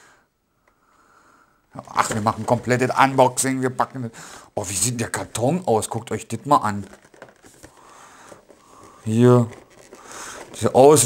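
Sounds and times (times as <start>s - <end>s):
man speaking: 1.7s - 7.0s, 9.0s - 9.6s, 10.6s - 11.0s
breaths through the nose: 4.1s - 4.6s, 7.6s - 9.1s, 9.8s - 10.6s.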